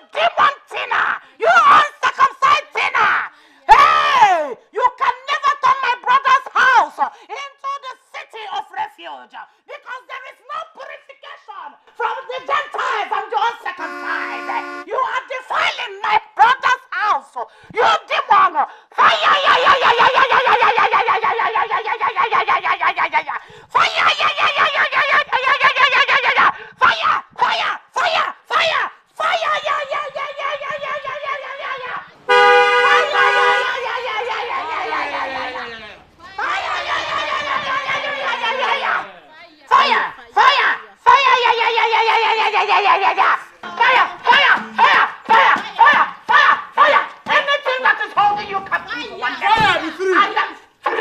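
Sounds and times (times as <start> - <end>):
woman shouting through megaphone: 0.2 - 4.5, 12.4 - 15.1, 28.6 - 51.0.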